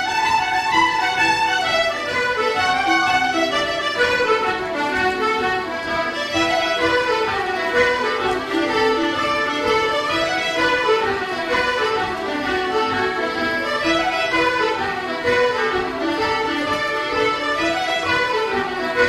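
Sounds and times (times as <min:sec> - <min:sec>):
accordion: 0:00.0 - 0:19.0
cello: 0:00.0 - 0:19.0
concertinas: 0:00.0 - 0:19.0
fiddles: 0:00.0 - 0:19.0
flutes: 0:00.0 - 0:19.0
harps: 0:00.0 - 0:19.0.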